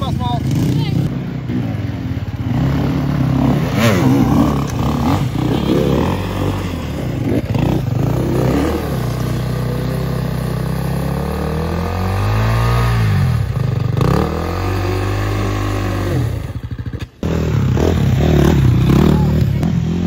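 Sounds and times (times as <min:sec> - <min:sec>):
dirt bike engines revving: 0:00.0 - 0:20.0.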